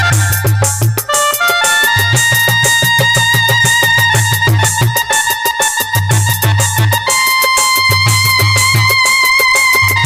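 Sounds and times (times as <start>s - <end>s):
folk band melody instrument: 0.0s - 10.0s
steady repeating drum beat: 0.0s - 10.0s.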